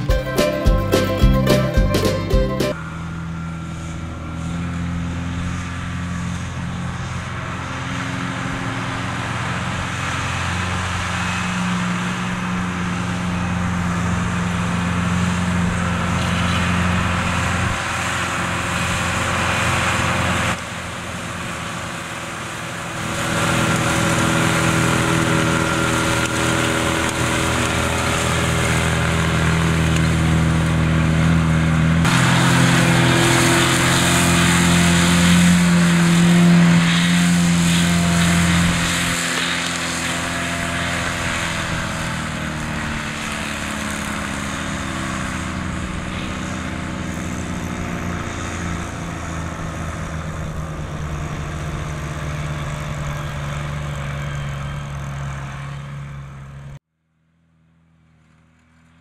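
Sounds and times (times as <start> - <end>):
tractor diesel engine drone: 0.0 - 59.0.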